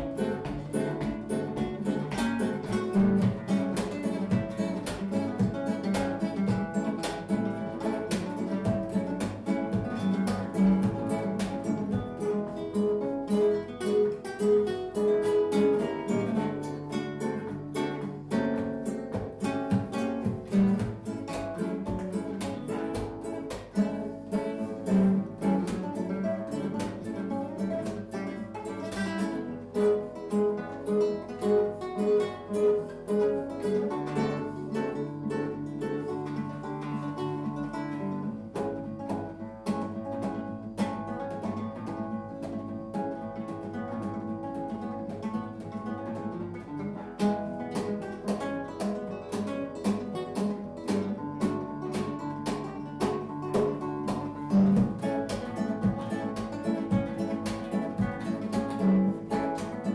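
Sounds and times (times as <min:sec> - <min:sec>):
acoustic guitar music: 0:00.0 - 0:59.9.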